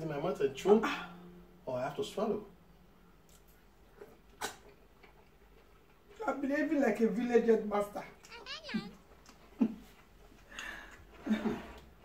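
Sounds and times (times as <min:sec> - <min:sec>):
wet mouth clicks: 0:03.3 - 0:06.0.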